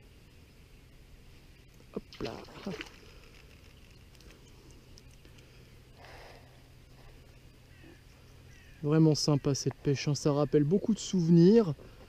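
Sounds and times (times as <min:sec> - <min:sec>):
faint bird chirps: 0:00.3 - 0:11.4.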